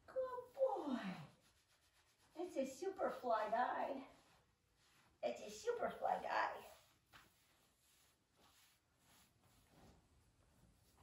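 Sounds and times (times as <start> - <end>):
woman talking: 0.0 - 1.3, 2.4 - 4.1, 5.2 - 6.8.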